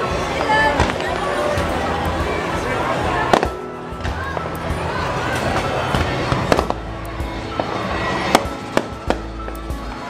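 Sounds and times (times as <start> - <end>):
fireworks bangs and crackles: 0.0 - 10.0
music playing: 0.0 - 10.0.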